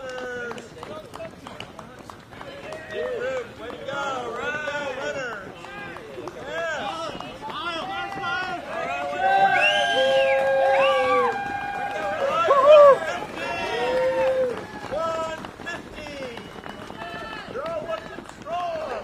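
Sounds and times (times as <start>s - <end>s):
runners' footsteps on road: 0.0s - 19.0s
spectators cheering and shouting: 6.5s - 15.4s.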